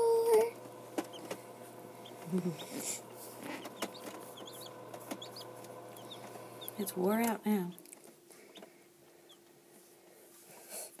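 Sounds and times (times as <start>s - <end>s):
incubator hum: 0.0s - 10.2s.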